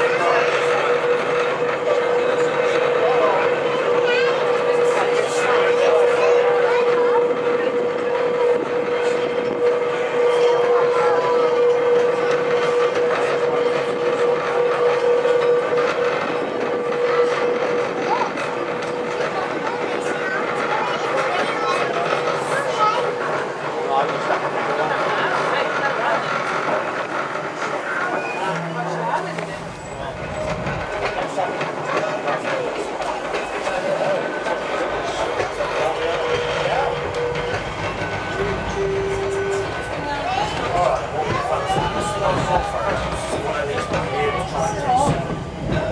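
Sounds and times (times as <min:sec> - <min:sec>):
tram rolling on track: 0:00.0 - 0:45.9.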